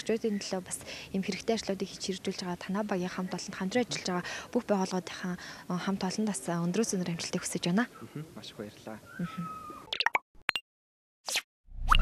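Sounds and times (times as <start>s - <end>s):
cartoon pops: 11.2s - 12.0s.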